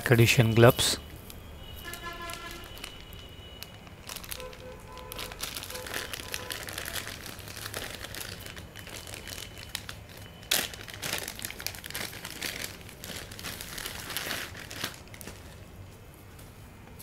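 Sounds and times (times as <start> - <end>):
plastic bag crinkling: 0.0 - 15.8.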